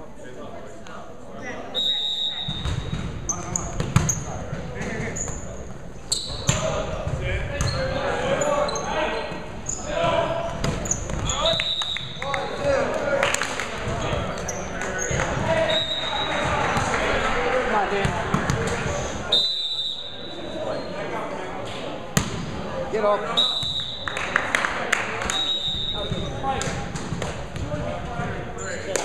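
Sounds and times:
players' voices: 0.0 - 29.0
sneakers squeaking on hardwood: 2.4 - 6.6, 7.6 - 12.2
volleyball slaps: 17.9 - 19.0, 22.2 - 22.5, 25.1 - 28.0.

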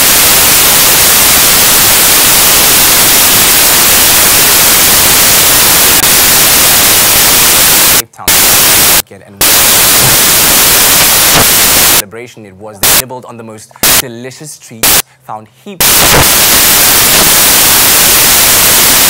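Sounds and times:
static hiss: 0.0 - 12.0, 12.8 - 13.0, 13.8 - 14.0, 14.8 - 15.0, 15.8 - 19.0.

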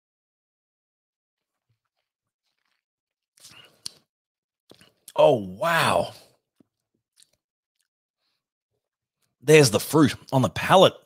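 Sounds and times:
faint mouth clicks: 3.4 - 4.1
person saying wow: 5.1 - 6.2.

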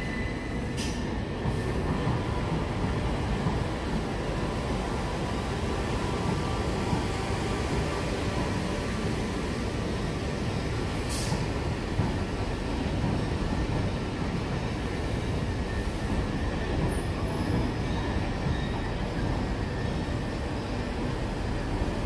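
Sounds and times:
train wheels rumbling on rails: 0.0 - 22.0
brief sharp click: 0.8 - 1.1
faint high wheel squeal: 15.7 - 20.4.

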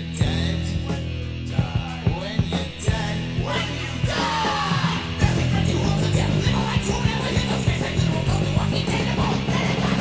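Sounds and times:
bass guitar: 0.0 - 10.0
distorted electric guitar: 0.0 - 10.0
drums: 0.0 - 10.0.

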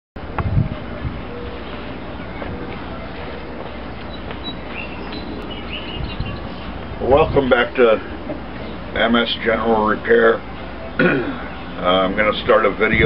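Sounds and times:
outdoor rumble and hiss: 0.2 - 13.0
faint high chirps: 1.3 - 6.8.

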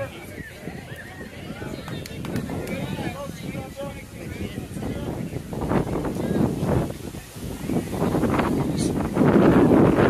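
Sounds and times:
indistinct spectator chatter: 0.0 - 10.0
wind buffeting microphone: 0.0 - 10.0.

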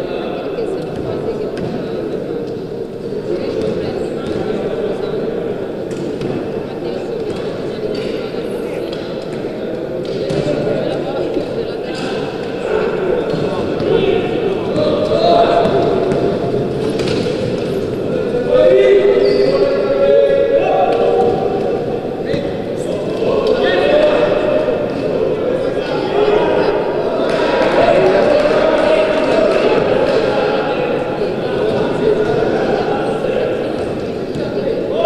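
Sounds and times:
people shouting with echo: 23.2 - 33.2.

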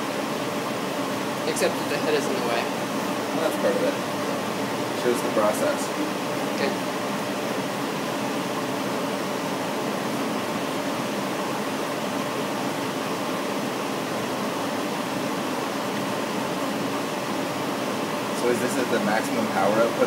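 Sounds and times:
laser engraving machine whirring: 0.0 - 20.0.

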